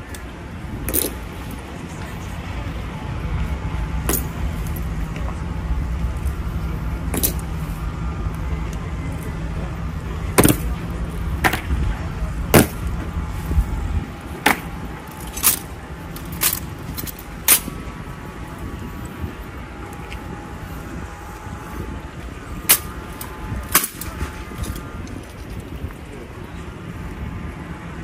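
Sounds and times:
low rumble: 0:00.0 - 0:28.0
rifles clicking and knocking: 0:00.9 - 0:01.2, 0:14.4 - 0:17.7, 0:22.7 - 0:25.7.

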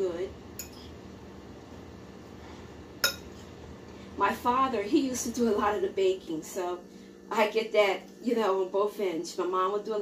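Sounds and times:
utensil clinking against bowl: 0:03.0 - 0:03.4.

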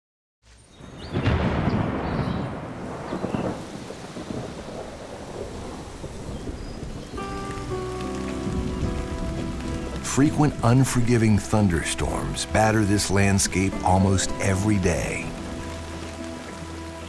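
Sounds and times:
heavy rain: 0:00.7 - 0:17.0
rolling thunder: 0:00.8 - 0:10.6.

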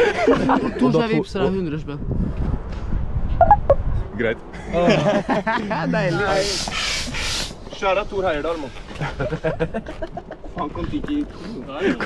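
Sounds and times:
wind rumbling on microphone: 0:01.5 - 0:04.2
short high chirps: 0:03.4 - 0:03.8.

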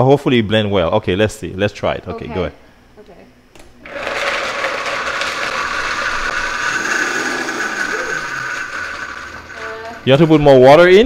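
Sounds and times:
blender running: 0:03.8 - 0:10.6.

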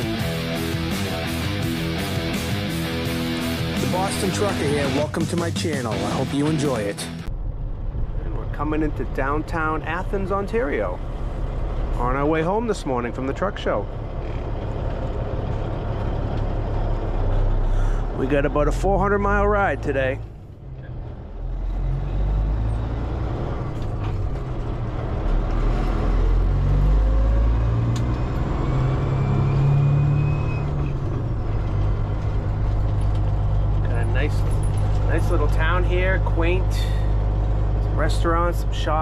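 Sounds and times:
truck diesel engine running: 0:00.0 - 0:39.0.

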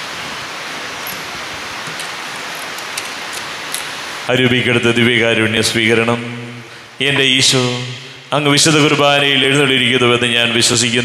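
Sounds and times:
electronic noise hiss: 0:00.0 - 0:04.8.

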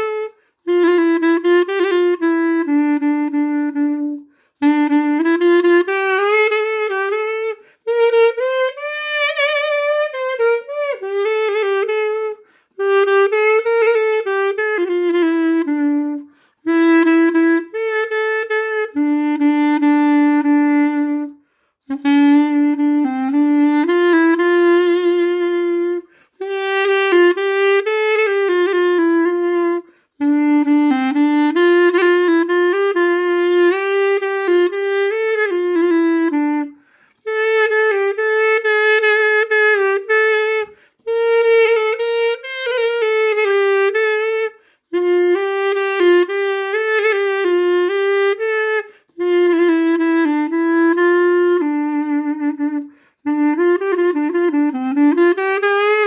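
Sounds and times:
pocket saxophone slow melody: 0:00.0 - 0:56.0.

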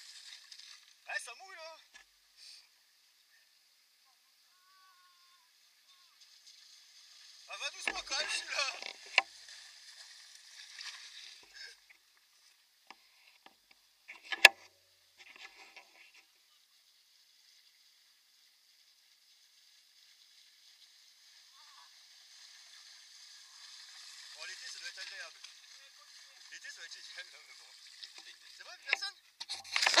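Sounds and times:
bike tyres splashing through water: 0:05.5 - 0:11.9, 0:16.8 - 0:28.9.

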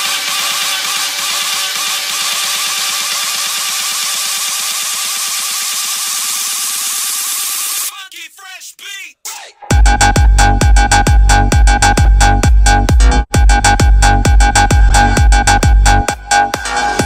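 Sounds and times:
house music with fast pulse: 0:00.0 - 0:07.9, 0:09.6 - 0:17.0.

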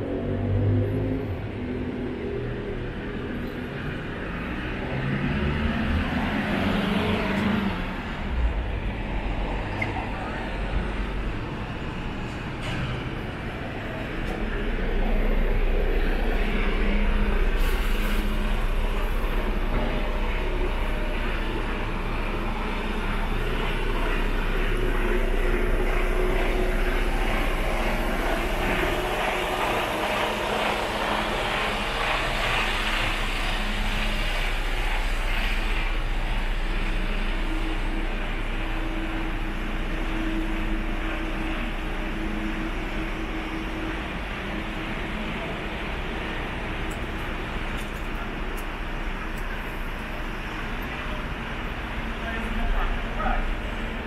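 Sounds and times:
diesel truck engine running: 0:00.0 - 0:54.0.

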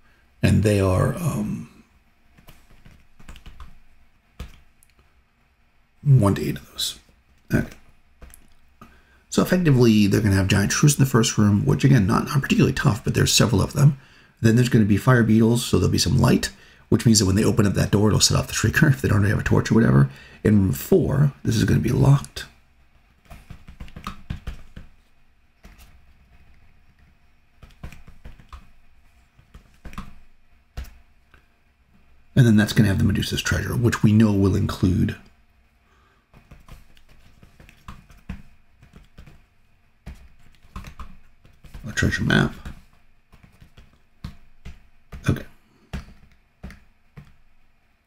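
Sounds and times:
computer keyboard typing: 0:02.4 - 0:03.8, 0:04.4 - 0:04.7, 0:23.3 - 0:24.9, 0:25.6 - 0:28.8, 0:36.4 - 0:39.4, 0:40.1 - 0:47.4.

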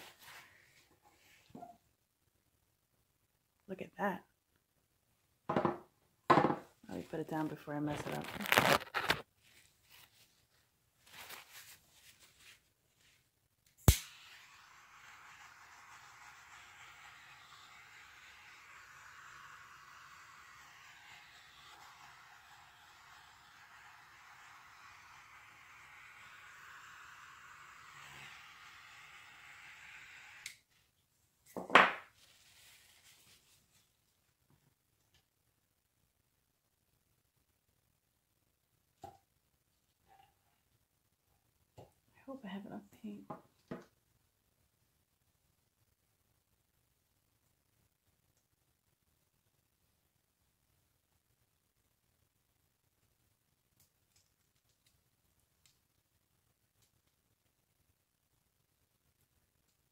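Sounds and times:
knock: 0:05.5 - 0:06.7.

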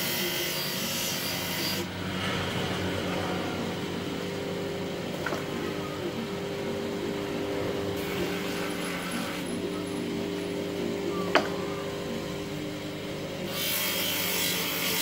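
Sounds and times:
bench grinder grinding steel: 0:00.0 - 0:15.0
grinder motor humming: 0:00.0 - 0:15.0.

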